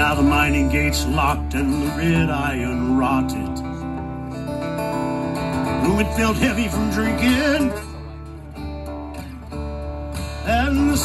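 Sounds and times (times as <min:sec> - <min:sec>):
man singing: 0:00.0 - 0:04.0, 0:05.6 - 0:08.2, 0:10.3 - 0:11.0
acoustic guitar chords: 0:00.0 - 0:11.0.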